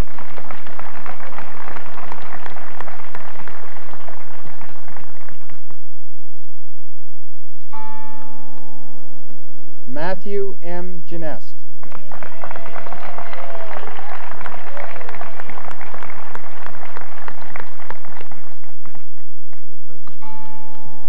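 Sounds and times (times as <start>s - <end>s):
audience applause: 0.0s - 5.8s, 11.8s - 19.6s
steady held tone with overtones: 0.0s - 12.1s.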